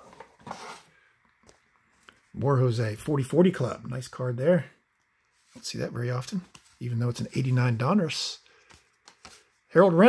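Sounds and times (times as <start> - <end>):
cardboard cards rustling: 5.3 - 7.8, 8.5 - 9.6.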